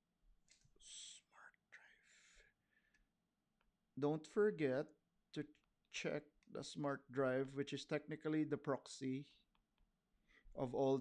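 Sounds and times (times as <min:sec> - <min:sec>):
man whispering: 0:00.7 - 0:02.5.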